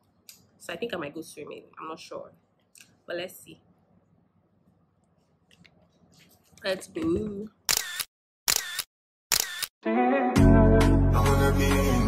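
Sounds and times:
camera shutter clicks: 7.7s - 9.7s.

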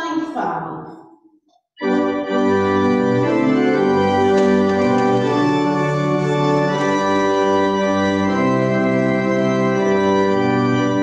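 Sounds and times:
church organ chords: 1.8s - 11.0s.

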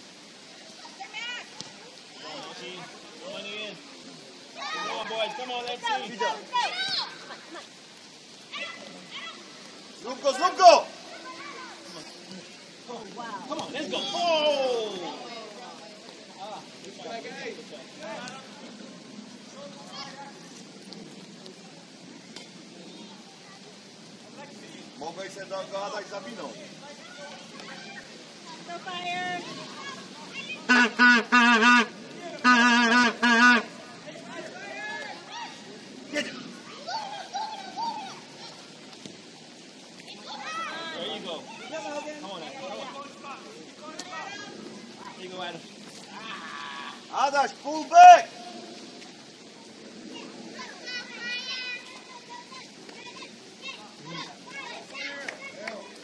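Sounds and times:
rain hissing: 0.0s - 56.0s
players and spectators shouting: 4.4s - 7.6s, 8.2s - 15.6s, 25.2s - 38.9s, 40.1s - 45.3s, 46.1s - 48.7s
loud high-pitched shouts: 4.6s - 7.4s, 28.9s - 38.8s.

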